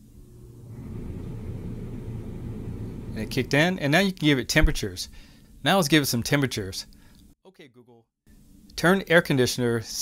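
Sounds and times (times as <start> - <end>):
air rushing from vent: 0.0 - 3.7.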